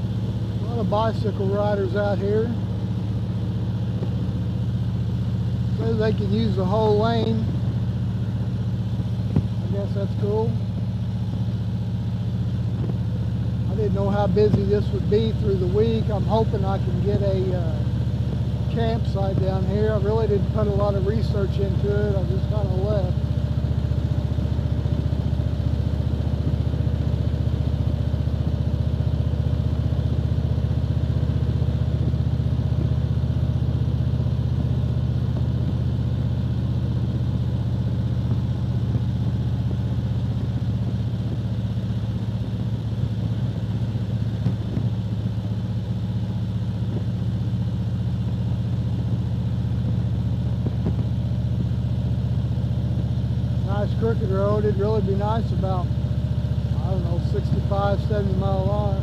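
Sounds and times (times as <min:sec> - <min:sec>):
motorcycle engine droning: 0:00.0 - 0:59.0.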